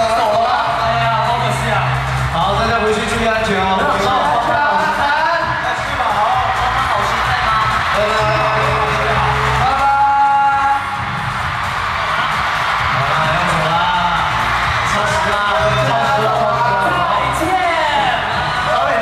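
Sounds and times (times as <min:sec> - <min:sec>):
audience cheering and screaming: 0:00.0 - 0:19.0
pop song with male vocals: 0:00.0 - 0:19.0.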